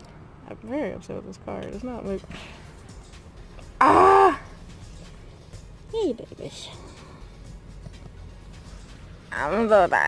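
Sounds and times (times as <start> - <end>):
woman groaning: 3.8 - 4.5.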